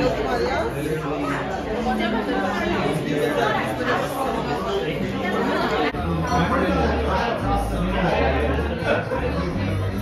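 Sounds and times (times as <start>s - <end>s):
many voices talking: 0.0s - 10.0s.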